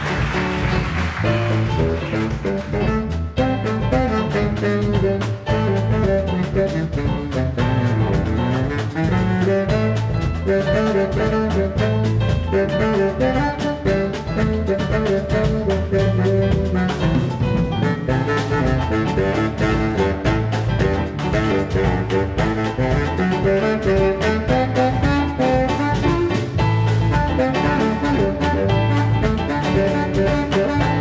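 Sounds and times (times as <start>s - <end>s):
baritone saxophone: 0.0s - 31.0s
drum beat: 0.0s - 31.0s
jazz band playing samba: 0.0s - 31.0s.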